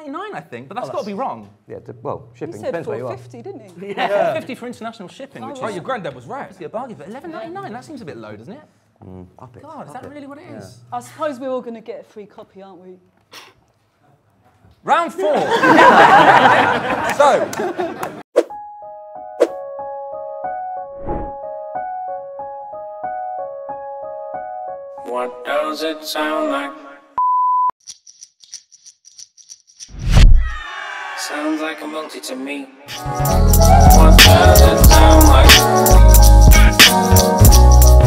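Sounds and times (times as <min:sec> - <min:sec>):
hip-hop jingle: 0:30.6 - 0:38.0.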